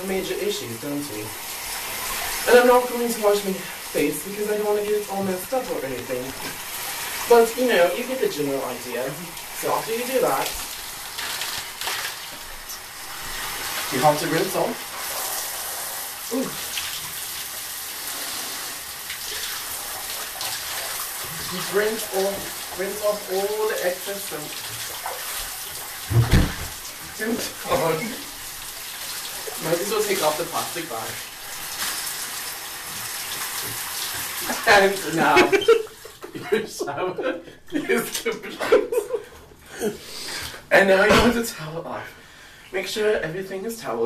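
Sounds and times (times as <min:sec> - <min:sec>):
shower water spraying: 0:00.0 - 0:36.3
water splashing on tiles: 0:01.4 - 0:36.3.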